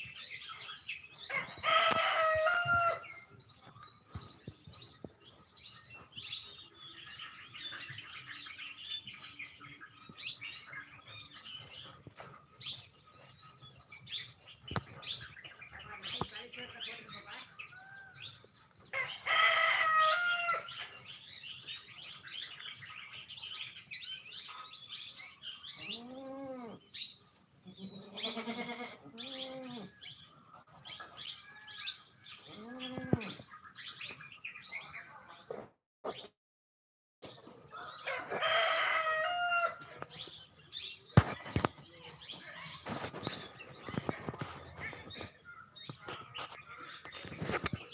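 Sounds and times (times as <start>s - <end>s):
birds chirping: 0.0s - 36.3s, 37.2s - 47.9s
rooster crowing: 1.3s - 3.0s, 19.0s - 20.7s, 37.7s - 39.9s.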